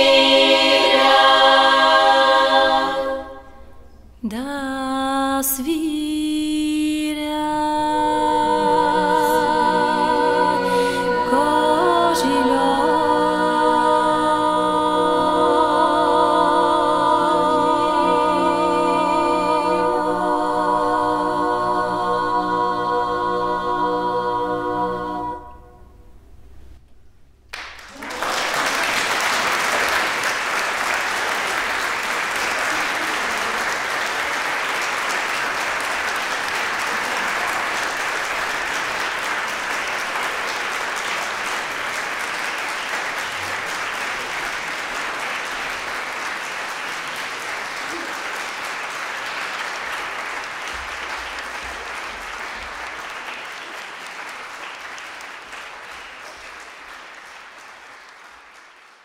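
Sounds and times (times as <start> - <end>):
audience applause: 27.5 - 59.0.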